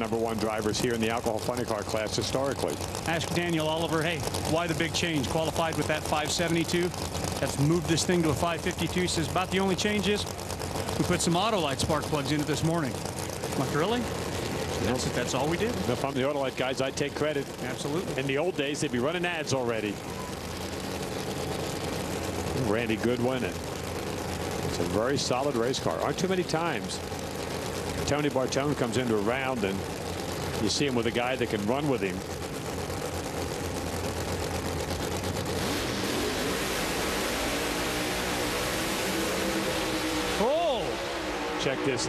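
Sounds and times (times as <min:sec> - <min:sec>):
car engines idling: 0:00.0 - 0:42.0.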